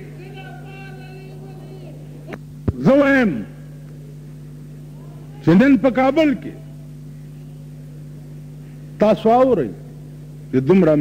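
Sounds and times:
low electrical hum: 0.0s - 11.0s
man speaking loudly: 2.8s - 3.6s, 5.4s - 6.8s.

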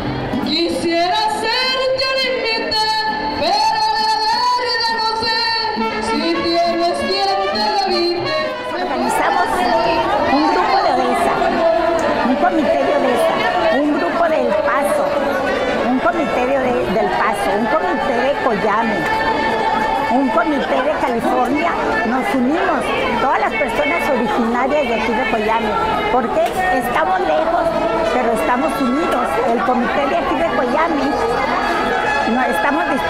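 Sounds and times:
crowd babble: 0.0s - 33.0s
music playing: 0.0s - 33.0s.

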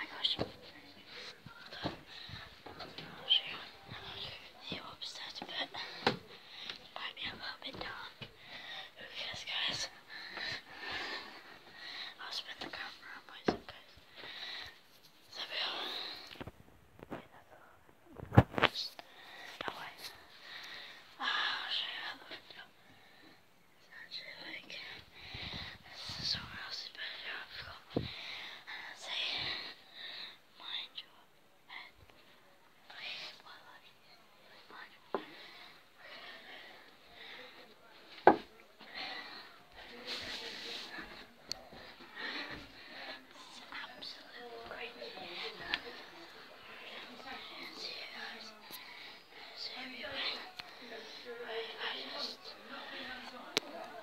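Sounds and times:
child whispering: 0.0s - 13.9s, 15.3s - 16.3s, 18.6s - 20.2s, 21.2s - 22.7s, 23.8s - 37.4s, 38.9s - 53.9s.

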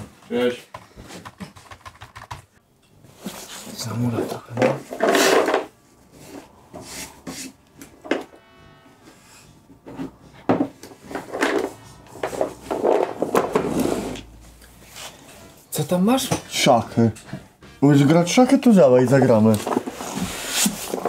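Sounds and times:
wooden box knocks and clacks: 10.5s - 13.7s.

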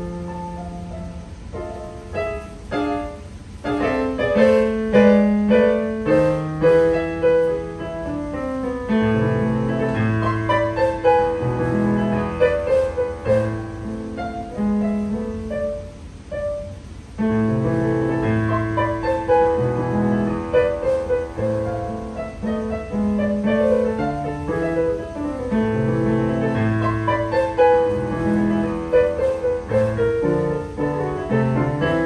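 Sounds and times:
solo piano piece: 0.0s - 32.0s.

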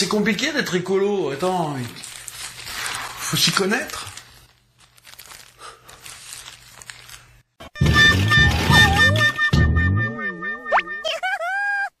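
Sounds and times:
held bending note: 7.7s - 11.0s
wobbling pitched tone: 7.8s - 11.2s.

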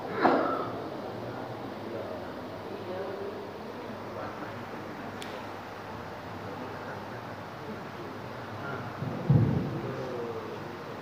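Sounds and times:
low heavy thump: 9.0s - 9.8s.

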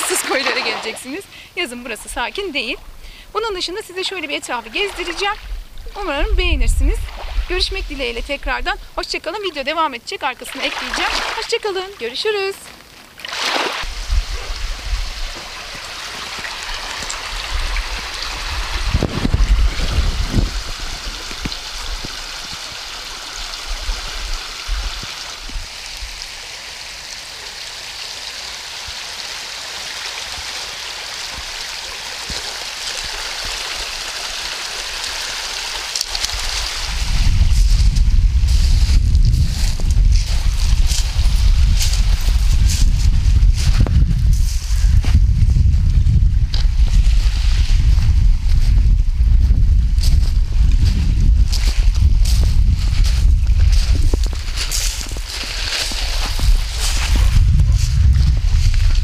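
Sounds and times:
stream rushing over pebbles: 0.0s - 59.0s
wind buffeting microphone: 4.5s - 9.8s, 13.8s - 22.7s, 36.2s - 59.0s.

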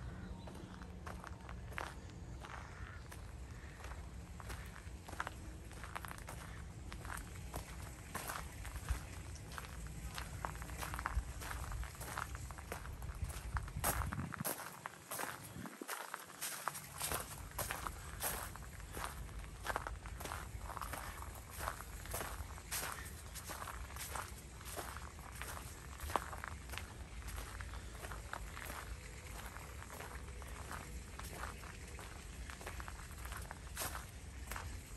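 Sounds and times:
footsteps on bark mulch: 0.1s - 34.9s.

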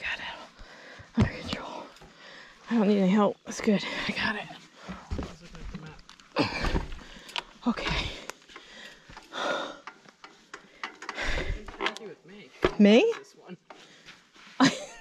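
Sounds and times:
person breathing hard: 0.5s - 1.2s, 6.4s - 10.0s, 10.6s - 11.7s.

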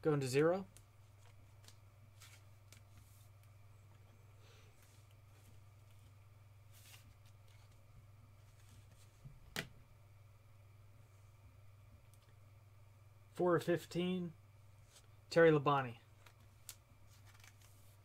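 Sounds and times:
steady low hum: 0.0s - 18.0s
trading cards rustling: 1.0s - 6.1s, 16.1s - 18.0s.

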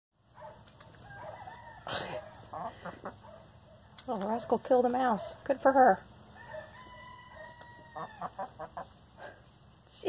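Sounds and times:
chickens clucking: 0.9s - 3.4s, 6.4s - 9.4s.

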